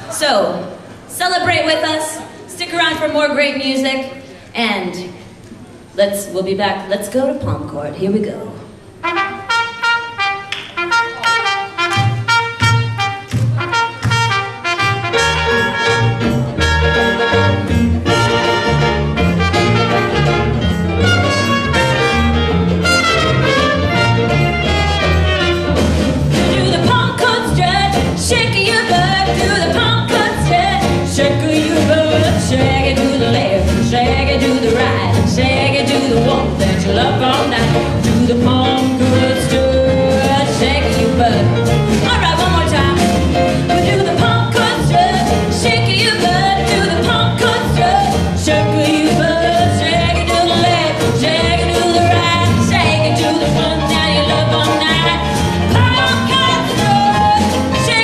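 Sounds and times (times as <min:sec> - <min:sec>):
jazz band playing: 0:07.1 - 0:58.0
drums: 0:09.1 - 0:58.0
bass line: 0:11.9 - 0:58.0.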